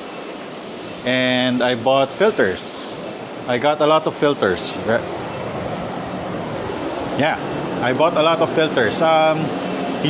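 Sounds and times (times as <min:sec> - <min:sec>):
urban street background hum: 0:00.0 - 0:10.0.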